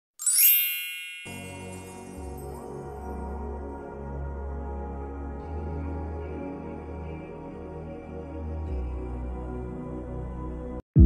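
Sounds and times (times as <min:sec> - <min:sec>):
bright high chime: 0:00.2 - 0:02.7.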